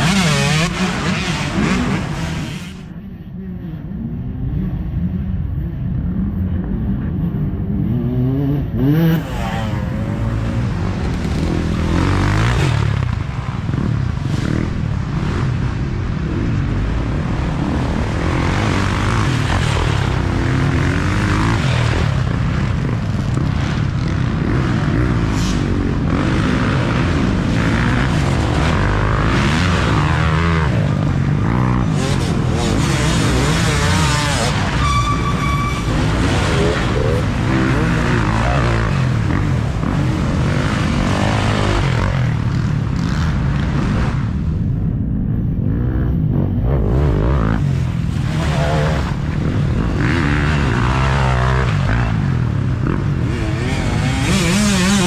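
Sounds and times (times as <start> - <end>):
dirt bike engines revving: 0.0 - 55.0
distant drone of bikes: 0.0 - 55.0.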